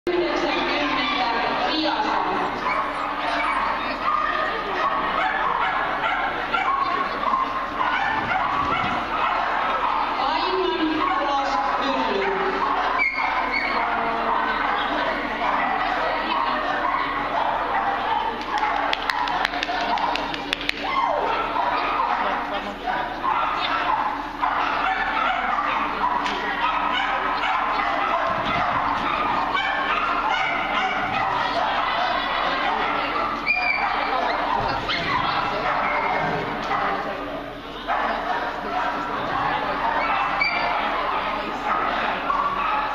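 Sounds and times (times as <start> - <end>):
crowd chatter: 0.1 - 42.9
people's voices: 0.1 - 42.9
dog barking: 0.3 - 42.9
small dog yipping: 12.2 - 14.8, 23.2 - 36.9, 39.9 - 41.0.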